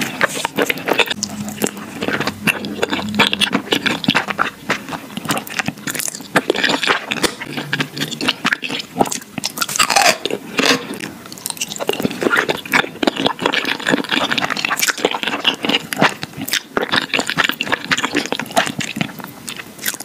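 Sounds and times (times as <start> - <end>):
crunching radish slices: 2.9 - 19.2.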